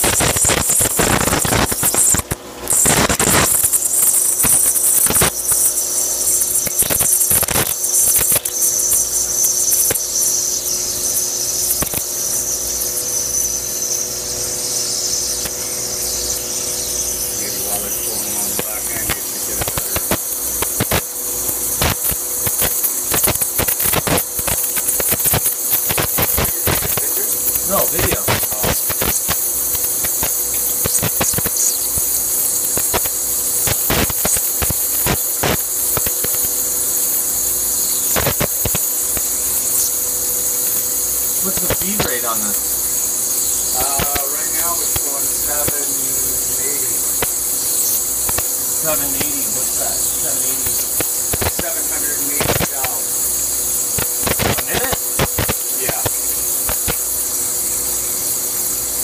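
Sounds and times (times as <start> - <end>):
faint machine hum: 0.0 - 59.0
spark gap crackling and clicking: 0.0 - 59.0
hiss of flushing water: 17.4 - 59.0.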